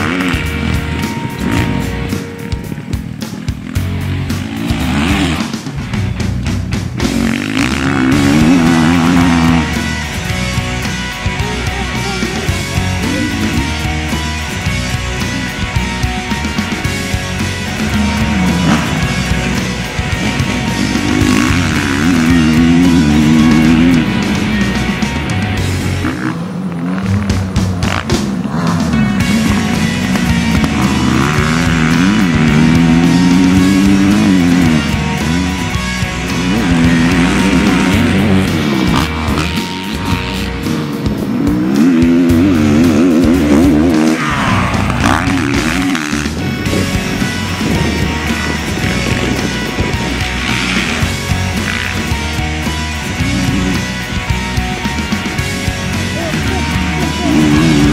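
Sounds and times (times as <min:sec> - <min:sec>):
dirt bike engine revving: 0:00.0 - 0:57.9
music: 0:00.0 - 0:57.9.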